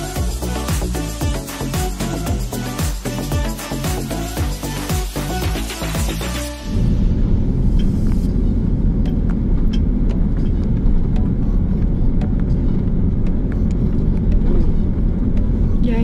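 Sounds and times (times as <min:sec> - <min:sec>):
car engine and tyre rumble: 0:06.5 - 0:16.0.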